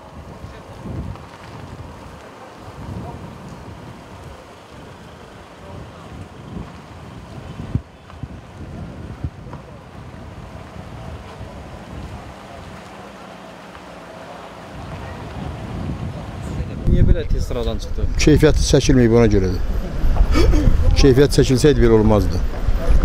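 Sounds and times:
wind buffeting microphone: 0.0s - 13.4s, 14.5s - 23.0s
car rumbling on rough road: 0.0s - 23.0s.

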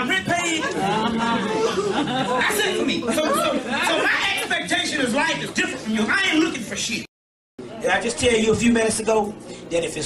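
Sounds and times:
man talking: 7.8s - 10.0s.

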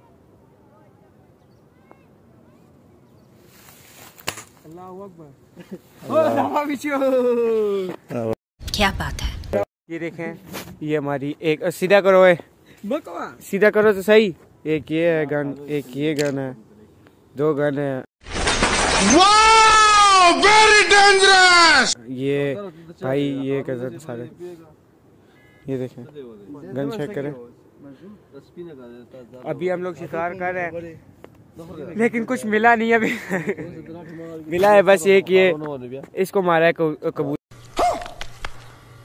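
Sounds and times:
small birds chirping: 1.0s - 3.5s.

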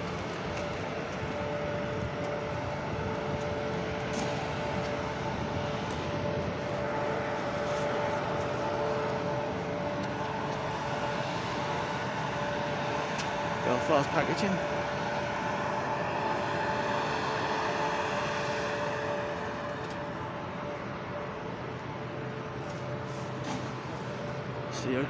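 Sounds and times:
diesel engine droning: 0.0s - 25.0s
faint steady whine: 0.0s - 25.0s.

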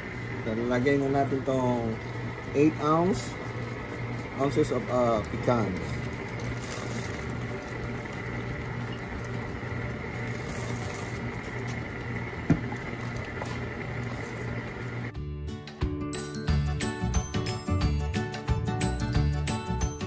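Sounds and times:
music: 15.1s - 20.0s.

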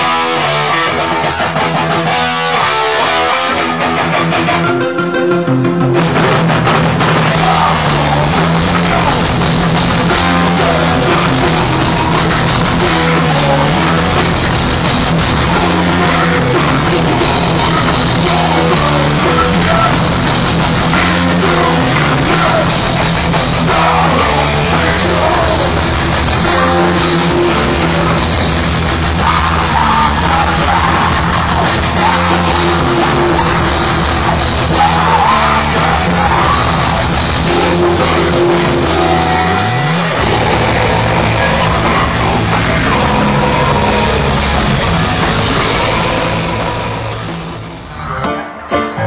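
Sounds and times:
bass guitar: 0.0s - 49.0s
electric guitar: 0.0s - 49.0s
heavy rock music: 0.0s - 49.0s
drum kit: 3.8s - 49.0s.

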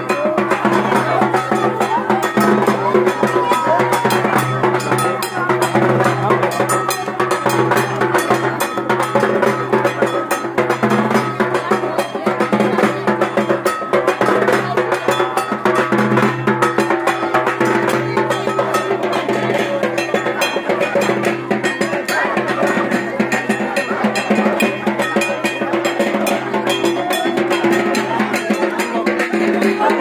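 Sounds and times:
barrel drum beaten with sticks: 0.0s - 30.0s.

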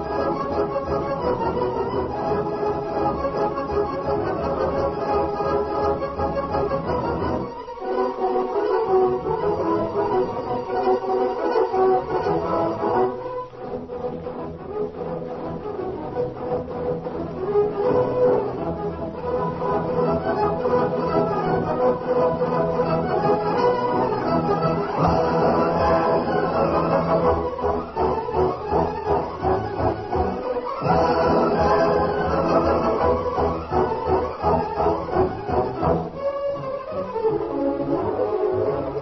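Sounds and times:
orchestral strings music: 0.0s - 39.0s.

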